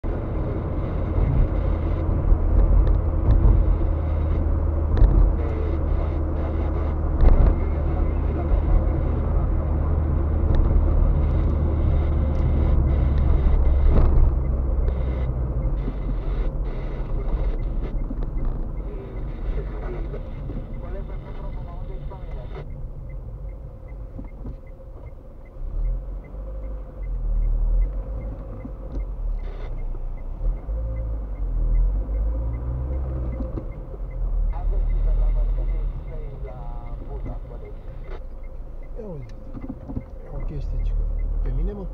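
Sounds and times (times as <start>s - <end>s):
car cabin road noise: 0.0s - 41.9s
faint regular ticking: 11.2s - 41.9s.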